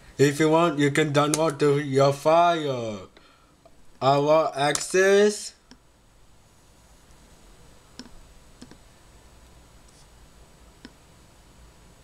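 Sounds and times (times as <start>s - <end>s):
computer mouse clicks: 7.9s - 8.8s, 10.8s - 11.0s.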